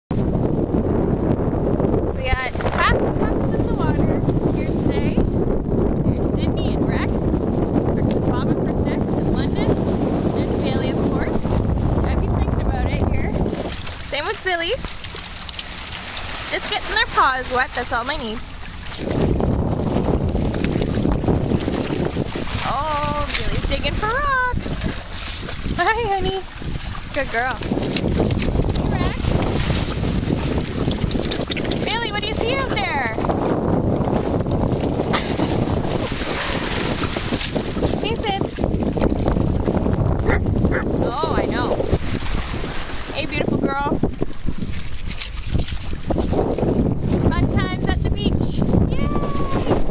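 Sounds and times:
wind rumbling on microphone: 0.1s - 49.9s
waves washing over stones: 12.1s - 33.4s, 34.2s - 39.8s, 40.8s - 47.7s
dogs splashing in water: 13.4s - 32.8s, 34.0s - 43.2s, 44.4s - 46.5s.

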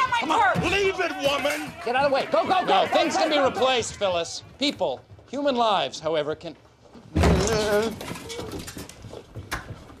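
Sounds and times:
people scuffling and jostling: 0.0s - 10.0s.

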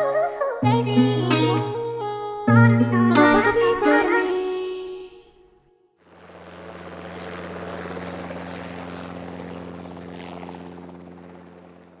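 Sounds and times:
helicopter hovering: 0.0s - 4.7s, 6.0s - 12.0s.

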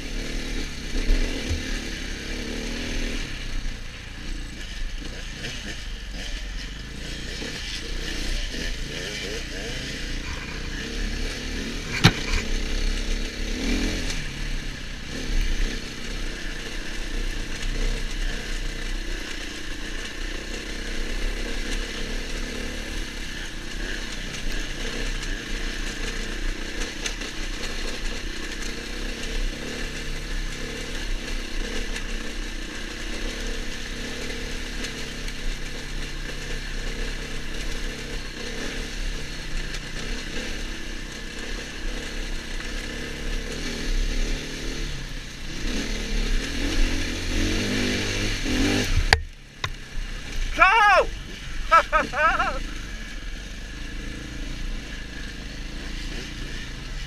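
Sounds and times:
dirt bike engine running: 0.0s - 57.0s.

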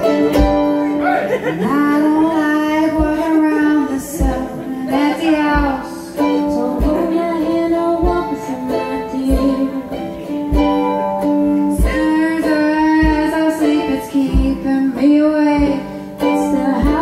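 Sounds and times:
deep beat thump: 0.0s - 8.5s, 10.4s - 12.2s, 12.8s - 13.6s, 14.3s - 14.8s
voices singing: 0.0s - 10.0s
small string instrument: 0.0s - 17.0s
strummed ukulele: 0.0s - 17.0s.

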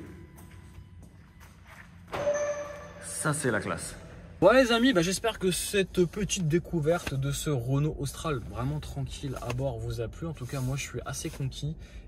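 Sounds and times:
faint footsteps: 0.0s - 3.0s.

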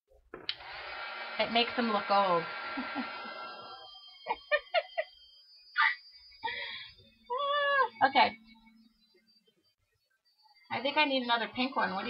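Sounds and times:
heat gun whirring: 0.4s - 4.0s
woman laughing: 2.7s - 3.3s, 4.2s - 5.2s, 5.8s - 6.7s.

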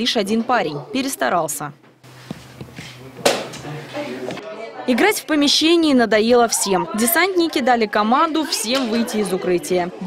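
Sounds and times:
faint voices of people: 2.7s - 10.0s.

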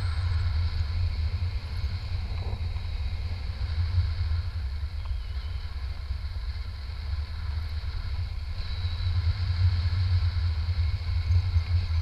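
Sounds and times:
wind buffeting camera microphone: 0.0s - 12.0s.

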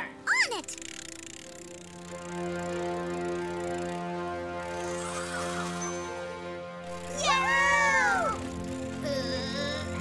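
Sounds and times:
background music: 0.0s - 10.0s
cartoon girl crying out: 7.1s - 8.4s.

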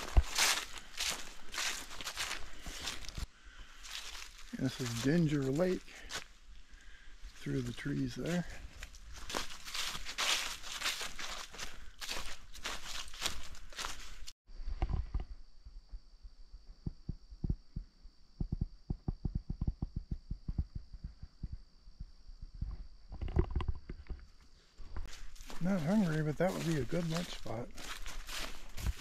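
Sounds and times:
footsteps crunching through leaves: 0.0s - 6.4s, 7.2s - 14.4s, 25.0s - 29.0s
soft low thumps: 15.2s - 23.2s.

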